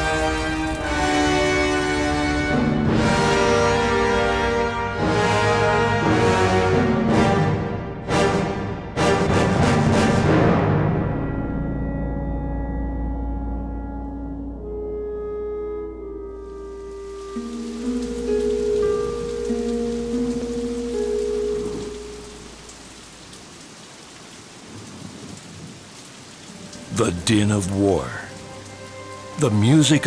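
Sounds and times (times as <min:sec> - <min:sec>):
steady rain: 0:00.0 - 0:10.8, 0:16.0 - 0:30.0
held orchestral chords: 0:00.0 - 0:22.7, 0:26.7 - 0:30.0.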